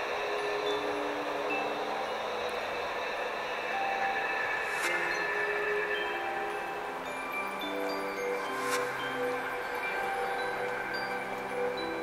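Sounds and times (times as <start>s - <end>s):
chime-like notes over loudspeakers: 0.0s - 12.0s
steady hiss: 0.0s - 12.0s.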